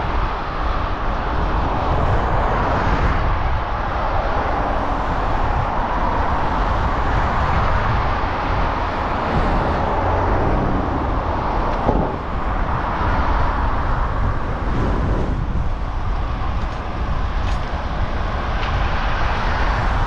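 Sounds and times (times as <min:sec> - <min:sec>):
road noise: 0:00.0 - 0:20.0
wind buffeting microphone: 0:00.0 - 0:20.0.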